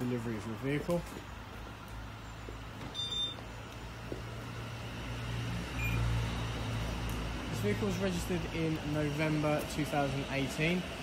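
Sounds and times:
low mechanical hum: 0:00.0 - 0:11.0
short faint beeps: 0:02.9 - 0:03.4, 0:05.8 - 0:06.0.

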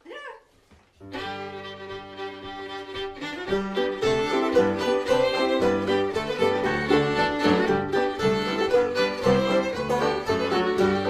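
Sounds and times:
fiddles playing bowed chord: 0:01.1 - 0:11.0
mandolin: 0:01.1 - 0:11.0
banjo: 0:01.2 - 0:11.0.

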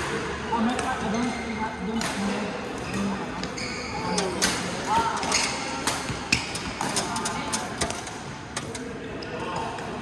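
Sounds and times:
rackets hitting shuttlecock: 0:01.9 - 0:02.4, 0:04.2 - 0:08.8
shoes squeaking on floor: 0:02.8 - 0:06.8.

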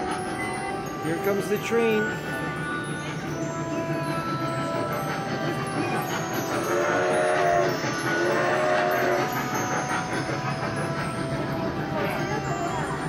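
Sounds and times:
background music: 0:00.0 - 0:13.0
recorded train whistle: 0:06.4 - 0:11.4.

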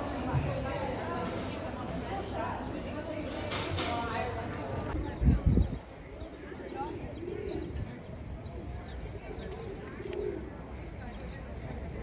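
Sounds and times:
small birds chirping: 0:04.1 - 0:12.0
pigeons cooing: 0:06.7 - 0:08.0, 0:09.1 - 0:10.7.

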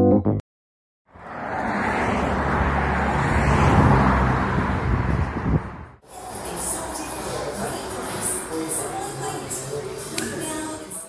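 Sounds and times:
road traffic noise: 0:01.1 - 0:11.0.

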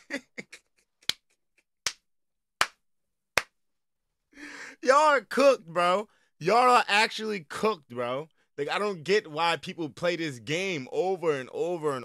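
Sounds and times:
man laughing: 0:00.0 - 0:01.1
hand claps: 0:01.0 - 0:02.8, 0:03.4 - 0:03.6.

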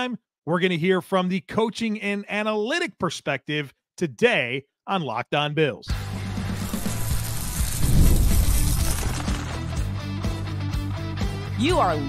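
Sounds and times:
theme music with low bass notes: 0:05.9 - 0:12.0
noisy whoosh: 0:06.6 - 0:09.2.

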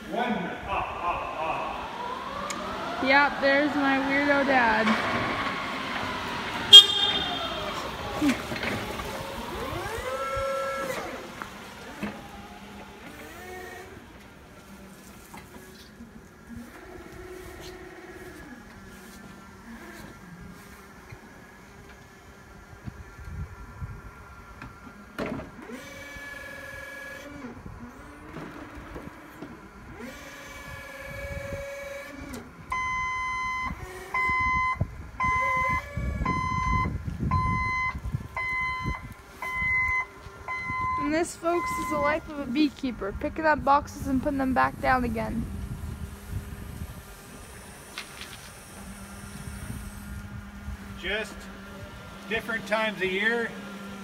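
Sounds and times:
electric motors whining: 0:01.3 - 0:54.0
warning beeper beeping: 0:06.7 - 0:07.8, 0:32.9 - 0:42.2.

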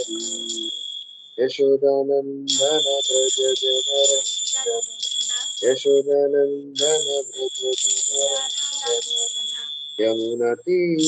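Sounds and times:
high-pitched whine: 0:00.0 - 0:01.7, 0:02.5 - 0:11.0
woman speaking slowly: 0:08.3 - 0:09.6.

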